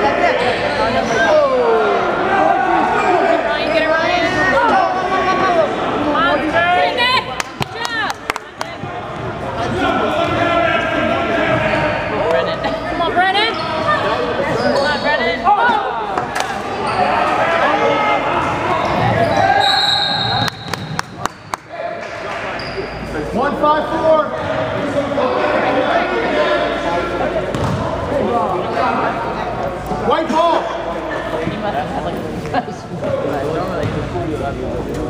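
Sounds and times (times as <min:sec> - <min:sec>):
echoing voices: 0:00.0 - 0:35.0
sneakers squeaking on gym floor: 0:12.7 - 0:15.4, 0:22.5 - 0:23.2
basketball bouncing: 0:27.5 - 0:27.8.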